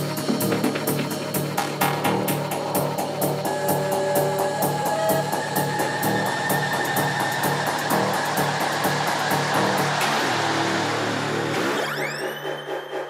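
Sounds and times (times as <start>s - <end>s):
hi-hat pattern: 0.0s - 11.5s
rising sweep: 2.0s - 13.0s
rushing noise swell: 2.3s - 13.0s.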